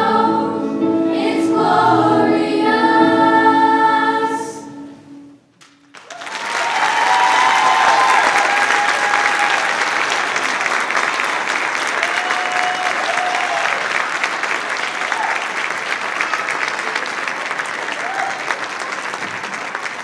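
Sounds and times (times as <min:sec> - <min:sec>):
choir singing: 0:00.0 - 0:05.4
audience applause: 0:05.9 - 0:20.0
cheers: 0:06.0 - 0:20.0.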